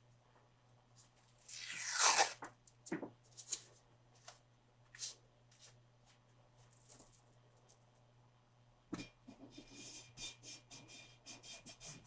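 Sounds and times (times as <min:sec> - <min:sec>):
adhesive tape peeling off roll: 0:01.4 - 0:02.4.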